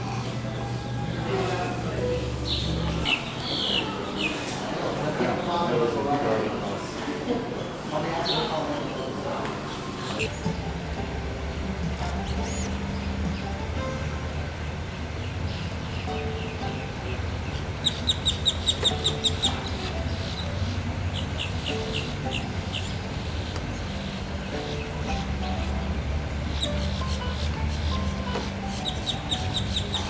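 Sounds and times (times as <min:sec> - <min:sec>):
low outdoor rumble: 0:00.0 - 0:06.1, 0:06.8 - 0:30.0
bird chirping: 0:12.2 - 0:13.5, 0:17.4 - 0:24.9, 0:28.7 - 0:30.0.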